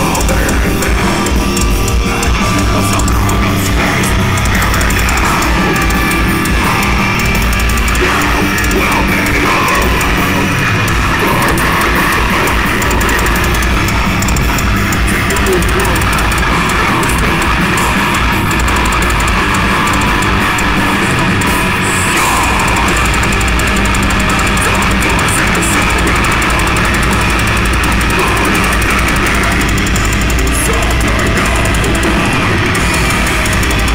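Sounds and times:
distorted electric guitars: 0:00.0 - 0:33.9
drum kit: 0:00.0 - 0:33.9
vocalist singing into microphone: 0:00.0 - 0:33.9.

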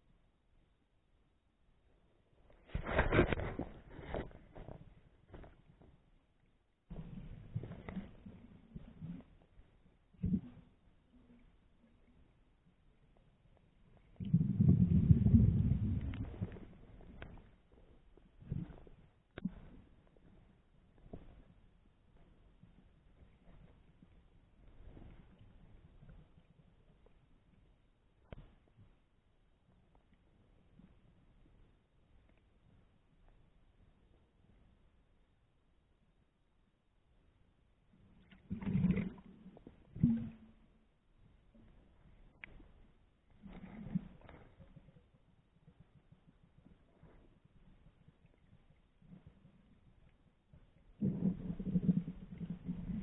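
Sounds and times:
underwater rumble of water and air: 0:01.9 - 0:53.0
scattered crackles: 0:02.6 - 0:06.0, 0:13.2 - 0:20.4
muffled underwater rush: 0:13.9 - 0:17.5, 0:38.4 - 0:40.7.

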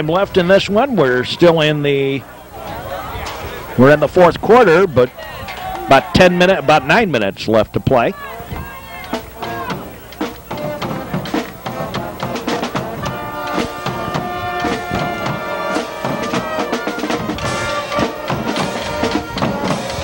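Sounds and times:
drum beat: 0:08.1 - 0:20.0
held horn notes: 0:08.1 - 0:20.0.

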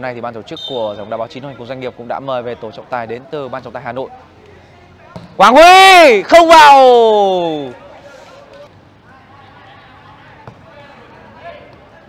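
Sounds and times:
distant players' voices: 0:00.0 - 0:12.0.

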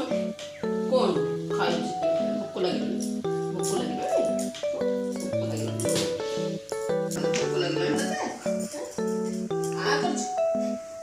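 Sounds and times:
background music held notes: 0:00.0 - 0:11.0.

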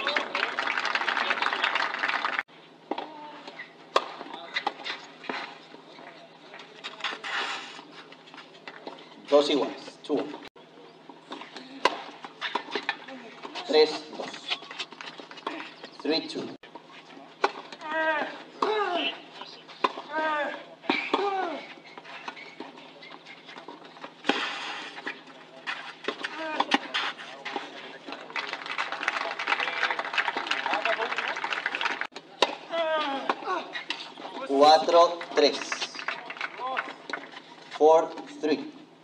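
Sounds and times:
crowd applauding: 0:00.0 - 0:02.4, 0:28.1 - 0:32.1, 0:35.2 - 0:37.3.

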